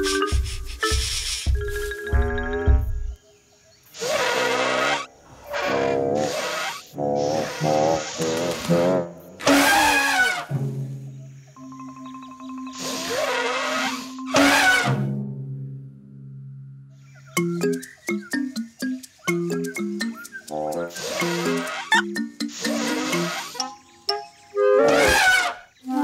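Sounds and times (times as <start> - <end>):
light music with held notes: 0.0 - 3.2, 11.6 - 26.0.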